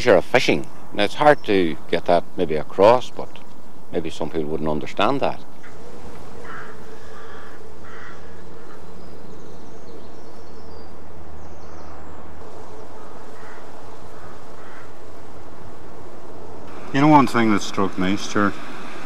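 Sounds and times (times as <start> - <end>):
background hiss: 0.0 - 19.0
short bird calls: 5.4 - 15.8
low hum: 5.4 - 19.0.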